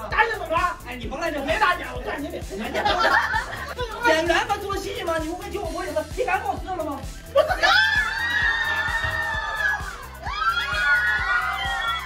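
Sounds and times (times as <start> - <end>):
background music with steady beat: 0.0 - 12.0
audience screaming and cheering: 7.4 - 12.0.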